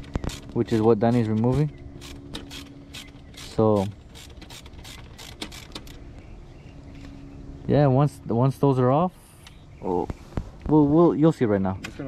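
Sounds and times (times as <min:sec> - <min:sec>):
ratchet wrench clicking: 0:00.0 - 0:06.0.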